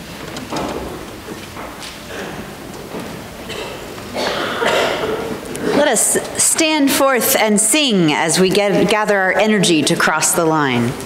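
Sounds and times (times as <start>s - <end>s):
person coughing: 3.5s - 6.0s.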